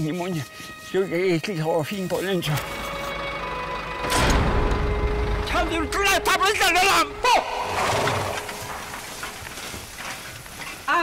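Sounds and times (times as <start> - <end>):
hay rake rustling through grass: 0.0 - 3.2, 7.6 - 11.0.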